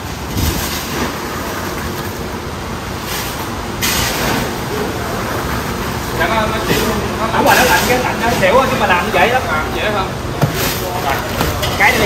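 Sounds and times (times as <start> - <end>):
ice rattling into plastic bag: 10.6 - 12.0.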